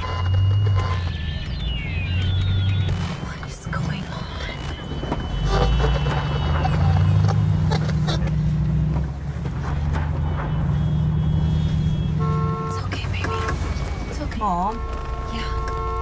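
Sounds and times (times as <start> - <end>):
car engine hum from inside: 0.0 - 16.0.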